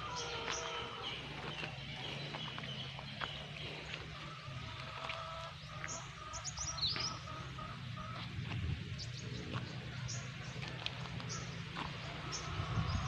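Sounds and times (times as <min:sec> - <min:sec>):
birds chirping: 0:00.0 - 0:13.0
low outdoor rumble: 0:00.0 - 0:13.0.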